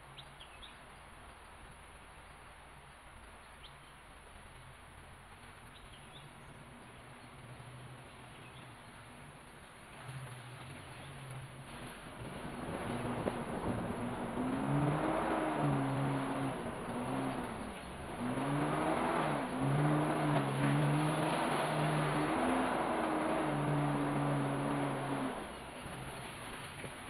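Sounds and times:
vehicle engine from inside cab: 0:09.8 - 0:27.0.

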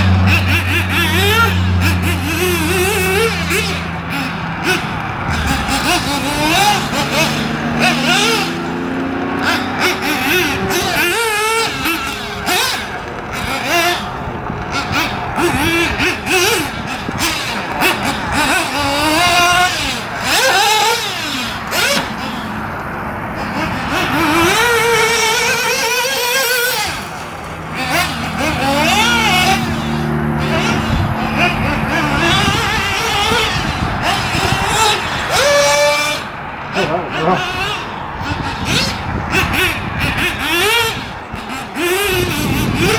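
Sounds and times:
model buggy engine revving: 0:00.0 - 0:42.9.

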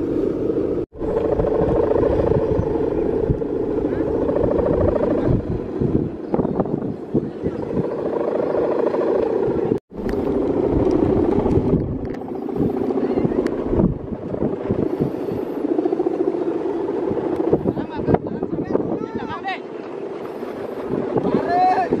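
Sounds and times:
kite humming bow droning: 0:00.0 - 0:22.0.

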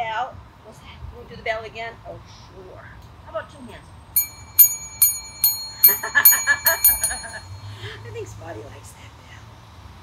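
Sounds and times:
small metal bell ringing: 0:04.2 - 0:08.0.

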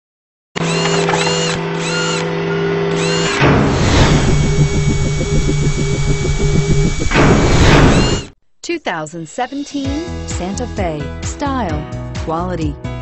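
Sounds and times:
electronic buzz: 0:00.6 - 0:08.4
fast pulsing rhythm: 0:04.0 - 0:08.3.

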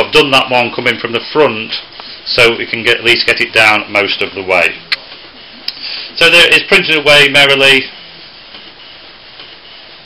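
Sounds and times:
printer carriage whirring: 0:00.0 - 0:10.0.

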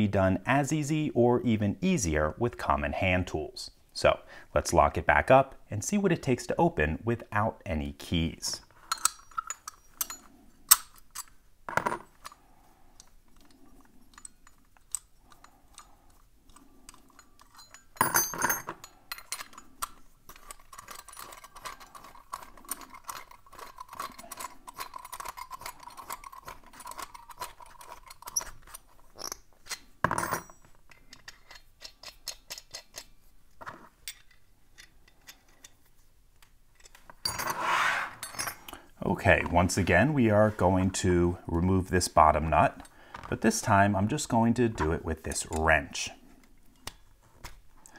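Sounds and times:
lock parts clattering: 0:08.7 - 0:39.8
metallic clicks of a padlock: 0:30.9 - 0:33.2.

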